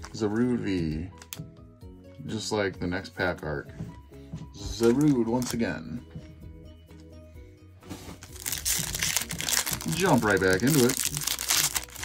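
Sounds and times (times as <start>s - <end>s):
faint background music: 0.0s - 12.0s
foil pack crinkling: 4.6s - 5.7s, 8.1s - 12.0s.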